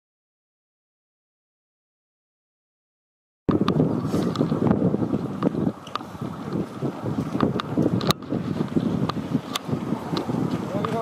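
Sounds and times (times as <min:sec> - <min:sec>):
wind buffeting microphone: 0:03.5 - 0:11.0.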